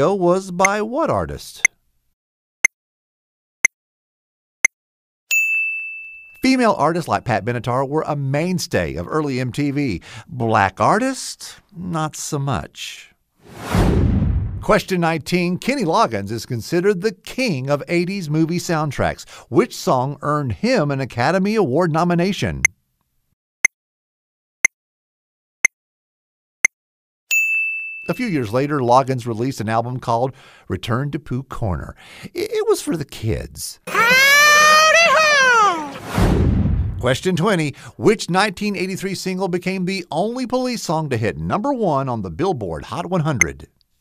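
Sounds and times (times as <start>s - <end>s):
bright bell-like ding: 5.3s - 6.4s, 27.3s - 28.2s.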